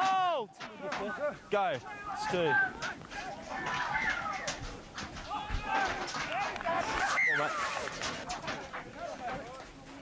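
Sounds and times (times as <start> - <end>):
players shouting: 0.0 - 9.6.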